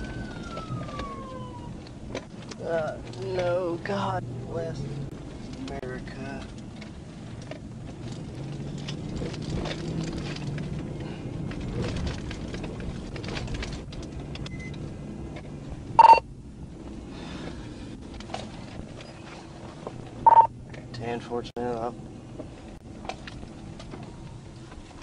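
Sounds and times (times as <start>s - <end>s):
car engine and road noise: 0.0s - 25.0s
loud electronic beep: 16.0s - 16.2s, 20.2s - 20.5s.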